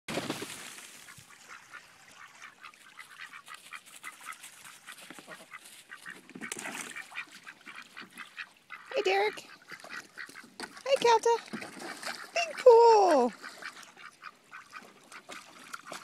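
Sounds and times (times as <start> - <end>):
hose water splashing into pool: 0.1 - 16.0
ducks quacking: 1.0 - 16.0.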